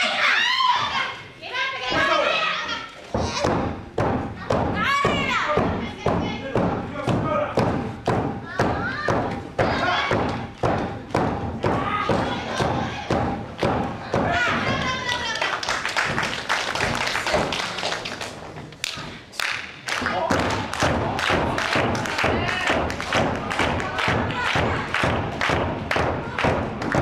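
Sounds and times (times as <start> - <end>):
people shouting: 0.0 - 3.7, 8.5 - 10.5, 11.6 - 15.4.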